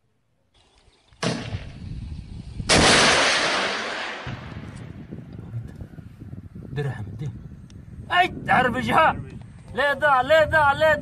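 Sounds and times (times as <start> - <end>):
loud explosions: 2.6 - 4.8.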